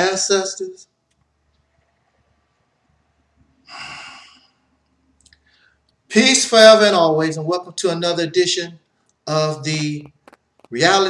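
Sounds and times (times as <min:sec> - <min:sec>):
man breathing: 0:03.6 - 0:04.7, 0:05.4 - 0:05.9.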